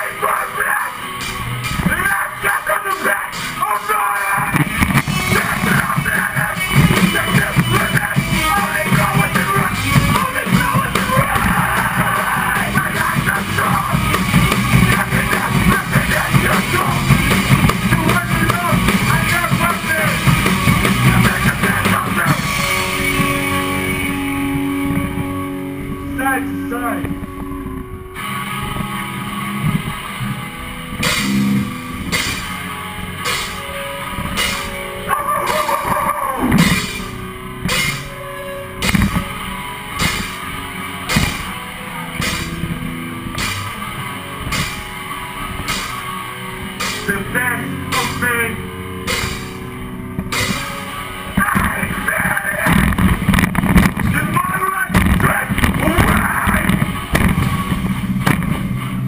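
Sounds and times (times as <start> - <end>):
hardcore band playing live: 0.0 - 59.0
drum hits: 4.3 - 24.2, 31.0 - 38.2, 38.8 - 59.0.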